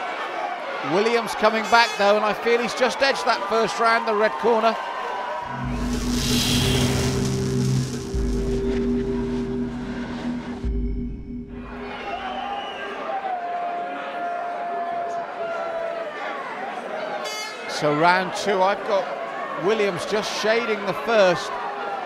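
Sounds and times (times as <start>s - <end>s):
deep bass swell: 5.4s - 12.9s
whoosh: 5.4s - 12.9s.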